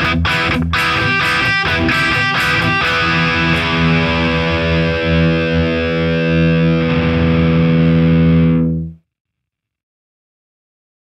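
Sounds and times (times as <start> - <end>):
distorted electric guitar chord: 0.0 - 9.0.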